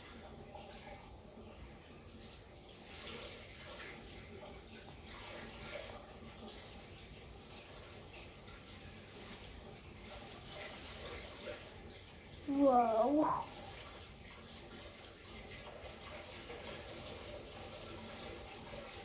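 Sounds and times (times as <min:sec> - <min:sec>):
water running faintly: 0:00.0 - 0:19.0.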